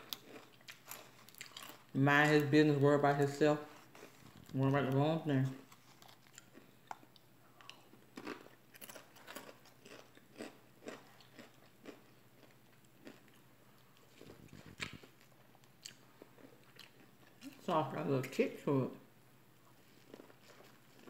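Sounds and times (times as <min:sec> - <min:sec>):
chewing crunchy food: 0:00.0 - 0:02.5, 0:03.1 - 0:17.7, 0:19.6 - 0:21.0.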